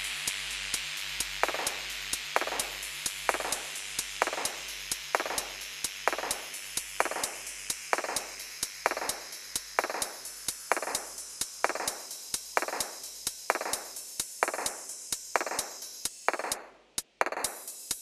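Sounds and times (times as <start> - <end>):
background music with steady beat: 0.0 - 18.0.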